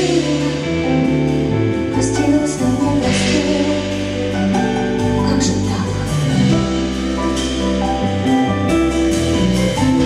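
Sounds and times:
band with bass guitar: 0.0 - 10.0.

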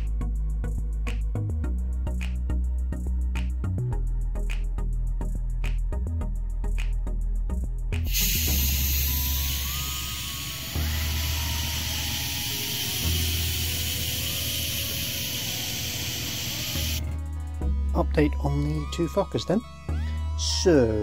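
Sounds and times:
background music: 0.0 - 21.0
airbrush spraying hiss: 8.0 - 17.0.

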